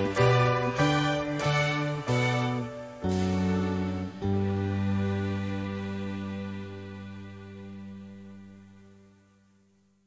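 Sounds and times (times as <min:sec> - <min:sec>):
person singing: 0:00.0 - 0:08.6
piano chord ringing: 0:00.0 - 0:09.0.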